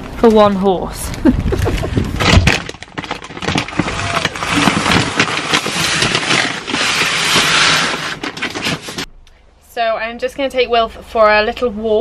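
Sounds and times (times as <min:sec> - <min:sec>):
plastic bags crinkling: 0:01.6 - 0:09.1.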